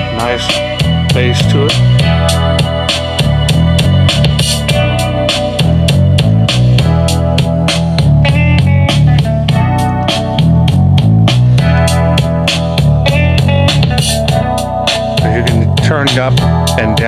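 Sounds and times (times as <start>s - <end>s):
instrumental music through speaker: 0.0s - 17.0s.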